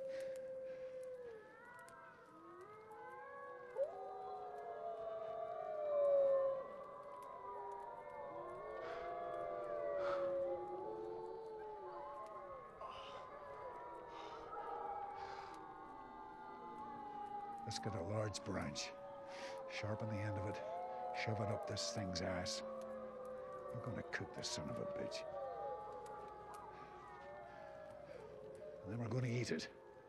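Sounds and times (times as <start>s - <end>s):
heavy breaths: 0.0s - 2.3s, 8.8s - 11.8s, 12.8s - 15.9s, 19.2s - 19.8s, 26.2s - 28.8s
wolves howling: 0.0s - 30.0s.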